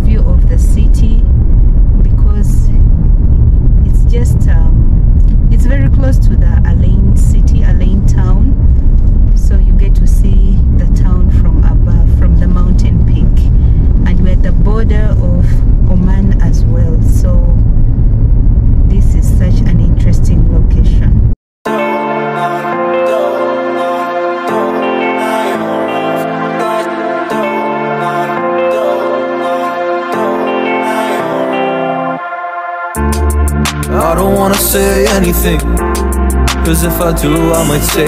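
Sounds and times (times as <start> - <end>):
car engine tyre and wind rumble: 0.0 - 21.4
indistinct voices: 3.8 - 8.6, 9.4 - 17.7, 33.8 - 38.0.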